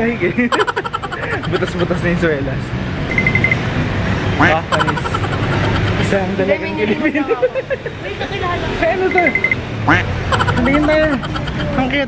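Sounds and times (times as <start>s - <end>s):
voices: 0.0s - 2.8s, 4.2s - 12.0s.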